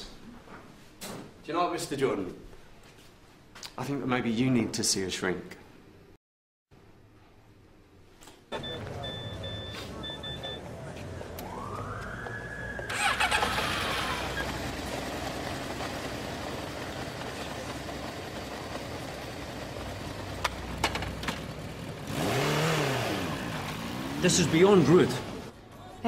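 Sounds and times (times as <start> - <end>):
street background: 8.5 - 26.0
motorcycle engine starting: 12.8 - 25.5.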